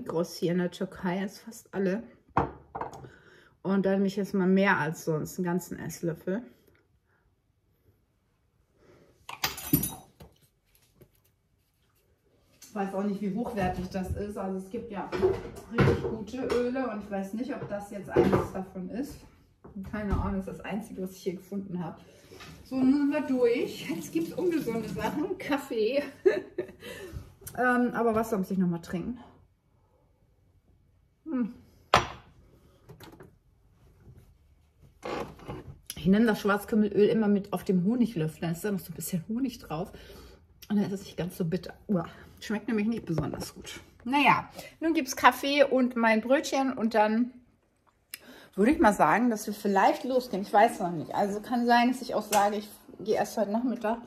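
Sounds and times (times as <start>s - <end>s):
kitchenware clattering: 9.3s - 10.2s.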